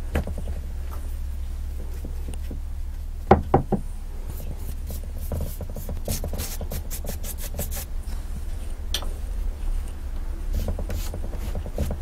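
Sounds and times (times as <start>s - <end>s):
steady low hum: 0.0s - 12.0s
paintbrush strokes dabbing: 4.3s - 7.9s, 10.5s - 12.0s.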